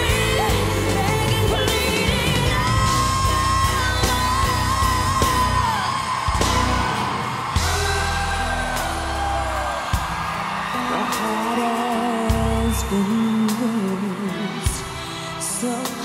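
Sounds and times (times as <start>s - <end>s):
wordless sung vocal: 0.0s - 9.9s
live band music: 0.0s - 16.0s.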